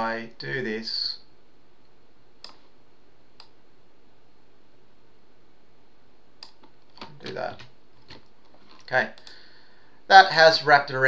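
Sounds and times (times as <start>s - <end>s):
low microphone hiss: 0.0s - 11.0s
faint computer mouse clicks: 2.4s - 2.6s, 3.4s - 3.6s, 6.4s - 8.2s.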